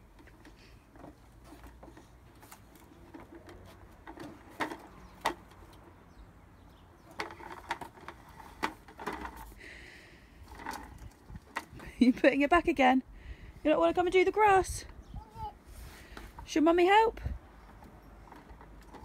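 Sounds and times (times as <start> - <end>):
plastic toy mower clicking: 7.1 - 9.6, 10.4 - 11.8, 17.8 - 19.0.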